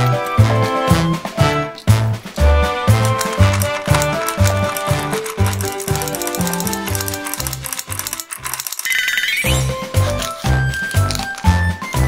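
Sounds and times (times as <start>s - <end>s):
upbeat background music: 0.0s - 12.0s.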